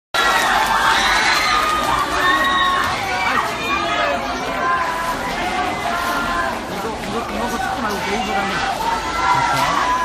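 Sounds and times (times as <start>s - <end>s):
crowd screaming and cheering: 0.2s - 10.0s.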